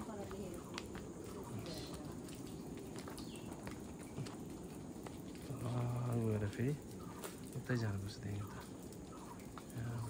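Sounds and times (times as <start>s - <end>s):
footsteps on stone path: 0.0s - 10.0s
steady low rumble: 0.0s - 10.0s.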